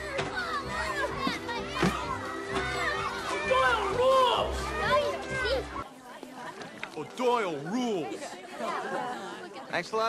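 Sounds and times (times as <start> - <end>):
background music with low notes: 0.0 - 5.8
children shouting and chattering: 0.0 - 10.0.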